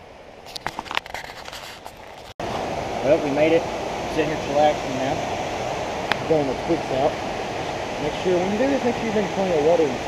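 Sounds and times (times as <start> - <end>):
hand scraping and knocking camera: 0.5 - 2.4
faint steady hiss: 2.4 - 10.0.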